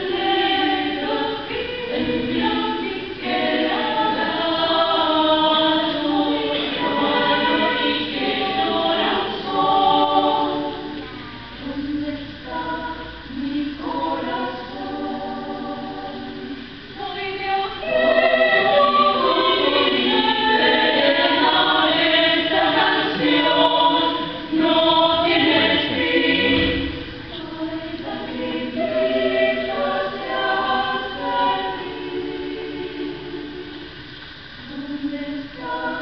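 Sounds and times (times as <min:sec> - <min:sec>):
women's choir singing: 0:00.0 - 0:36.0.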